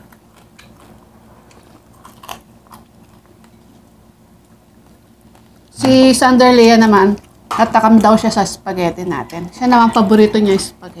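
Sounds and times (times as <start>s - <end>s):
people chewing food: 0.0s - 11.0s.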